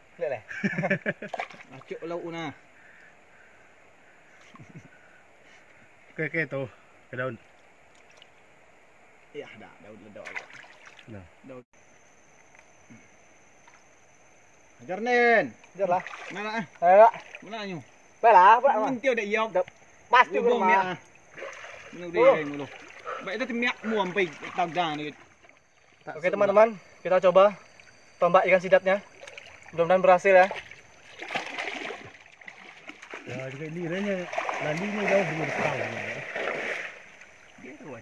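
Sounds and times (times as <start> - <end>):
water splashing and sloshing: 1.2 - 2.0, 7.4 - 8.5, 10.2 - 11.2, 15.6 - 18.0, 21.0 - 26.4, 27.6 - 38.0
man calling out loudly: 20.1 - 21.0.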